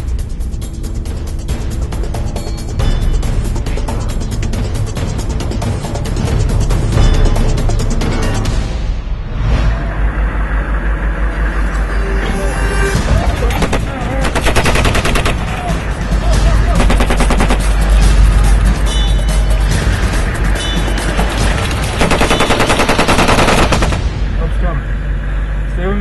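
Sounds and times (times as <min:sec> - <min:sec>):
rapid automatic gunfire: 0:13.5 - 0:15.9, 0:16.7 - 0:18.1, 0:21.6 - 0:24.2.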